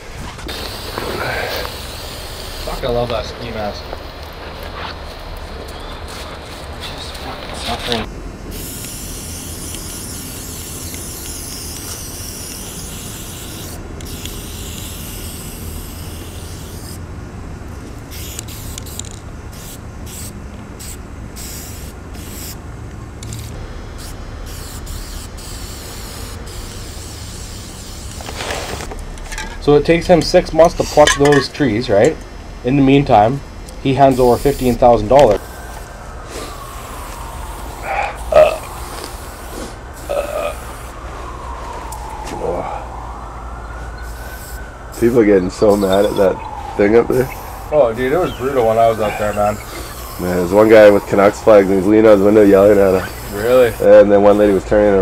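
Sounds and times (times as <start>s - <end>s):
spray paint can hissing: 0.5s - 3.0s, 7.9s - 17.0s, 18.1s - 22.6s, 23.2s - 28.9s, 34.1s - 41.0s, 44.0s - 46.3s, 47.2s - 54.7s
man grunting: 37.9s - 38.7s, 40.1s - 40.6s.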